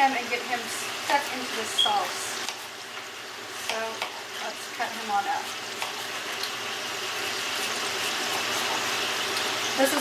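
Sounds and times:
steaks sizzling in a pan: 0:00.0 - 0:10.0.

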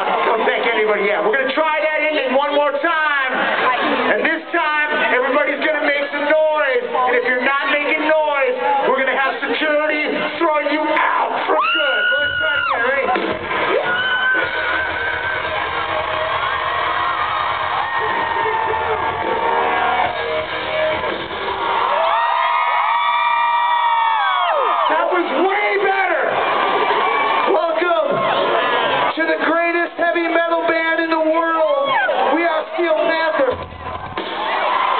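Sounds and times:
crowd cheering and yelling: 0:00.0 - 0:34.9.

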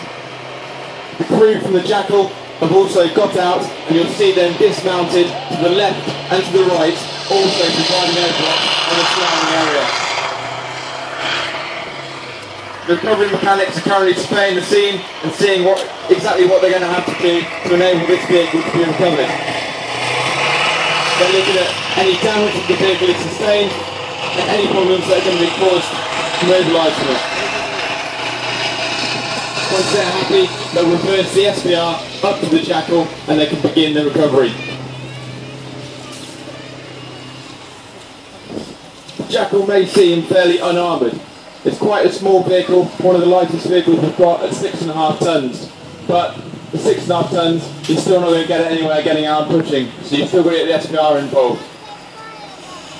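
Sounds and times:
vehicle engines running: 0:00.0 - 0:52.9.

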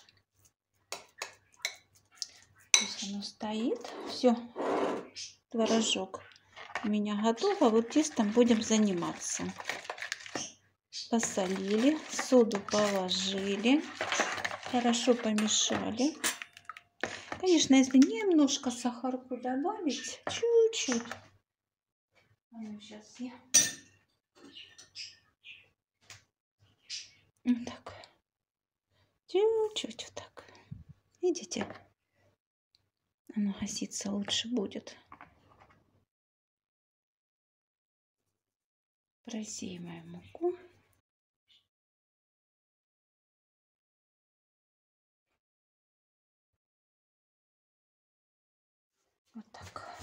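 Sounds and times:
spoon clinking against bowl: 0:02.8 - 0:03.0, 0:23.6 - 0:23.9
metal spoon clinking in bowl: 0:02.8 - 0:03.1, 0:15.1 - 0:16.8, 0:23.6 - 0:23.9.

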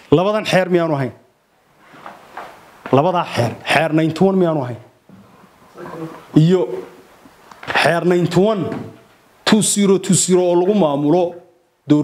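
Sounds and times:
man speaking: 0:02.9 - 0:04.9, 0:05.8 - 0:07.1, 0:07.7 - 0:12.0.

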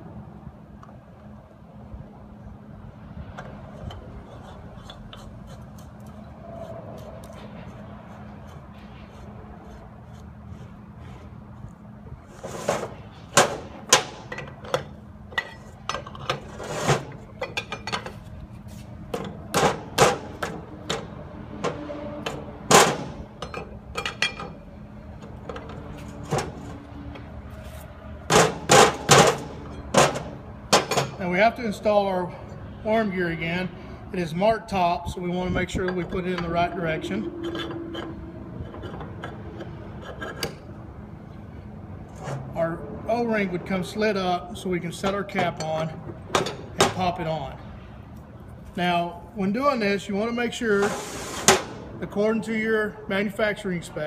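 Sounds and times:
steady low hum: 0:00.0 - 0:54.0
wrench clanking on metal: 0:13.4 - 0:18.2, 0:19.1 - 0:24.6, 0:35.7 - 0:40.6, 0:45.0 - 0:47.0.

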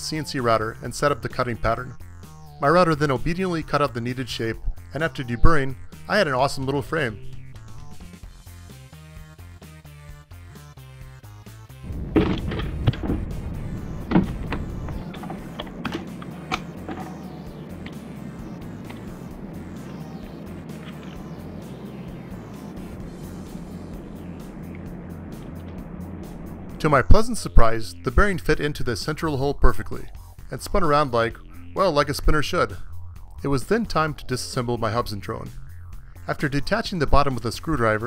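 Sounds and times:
funk music: 0:11.7 - 0:29.4.

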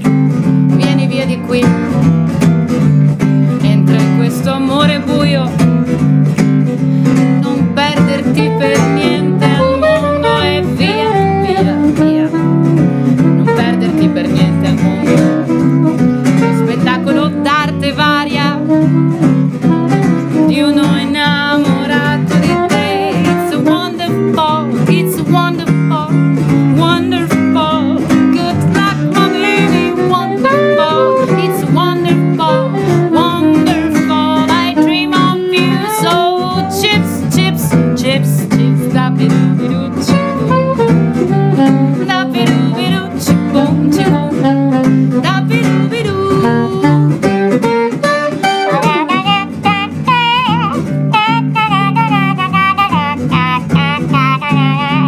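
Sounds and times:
woman singing: 0:00.0 - 0:02.1, 0:03.2 - 0:05.8, 0:07.0 - 0:55.0
acoustic guitar strumming: 0:00.0 - 0:55.0
soprano saxophone melody: 0:03.2 - 0:55.0.

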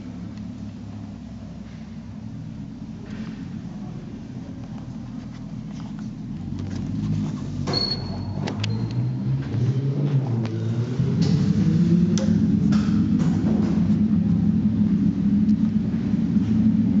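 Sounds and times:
motorcycle engine revving: 0:06.4 - 0:17.0.

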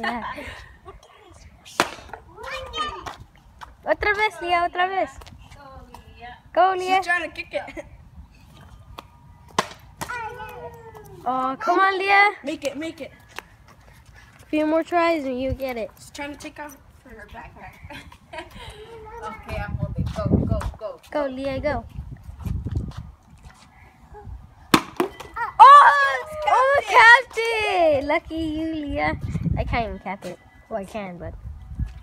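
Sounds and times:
plastic bottle hitting asphalt: 0:24.7 - 0:25.3.

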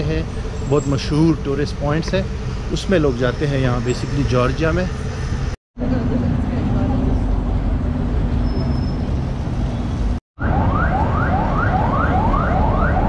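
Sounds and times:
traffic rumble: 0:00.0 - 0:13.0
electronic siren sweeping: 0:10.4 - 0:13.0.

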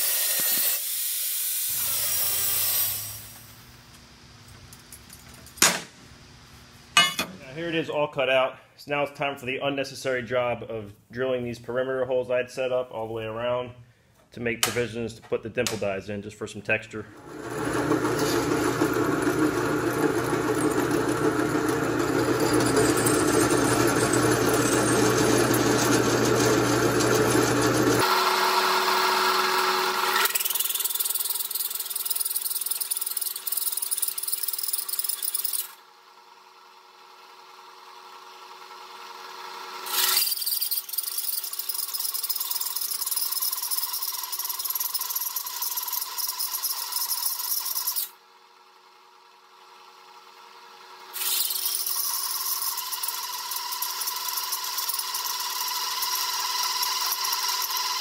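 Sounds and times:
drill press cutting steel: 0:00.0 - 0:03.6, 0:17.1 - 0:35.8, 0:39.8 - 0:48.2, 0:51.1 - 0:58.0.

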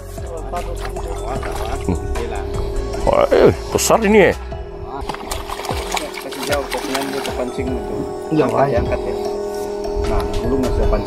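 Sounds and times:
background music: 0:00.0 - 0:11.0
fish splashing in water: 0:00.8 - 0:01.9, 0:05.0 - 0:07.6.

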